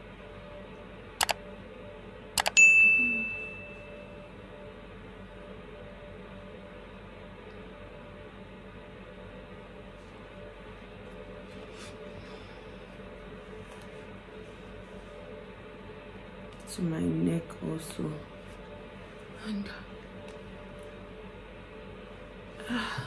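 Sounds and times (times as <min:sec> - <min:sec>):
room tone hum and hiss: 0:00.0 - 0:23.0
bell ding: 0:02.6 - 0:03.9.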